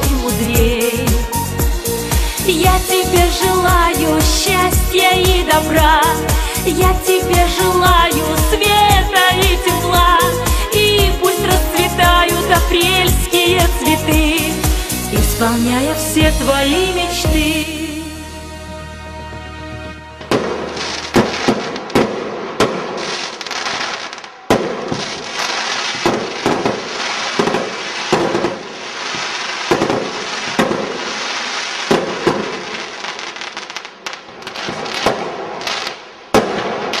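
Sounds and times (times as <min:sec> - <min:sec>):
held musical chord: 0:15.6 - 0:21.4
fireworks bangs: 0:20.2 - 0:37.0
fireworks crackling: 0:20.2 - 0:37.0.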